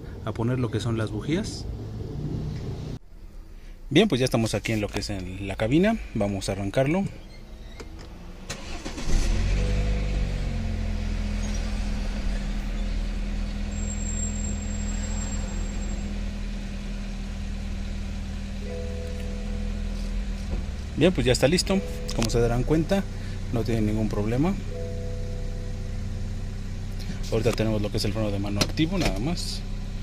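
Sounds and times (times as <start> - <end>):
car engine starting and idling: 0.0 - 30.0.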